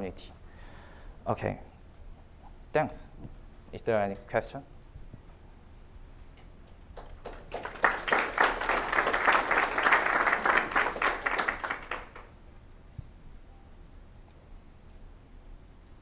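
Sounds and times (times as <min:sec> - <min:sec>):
audience applause: 0:07.0 - 0:12.3.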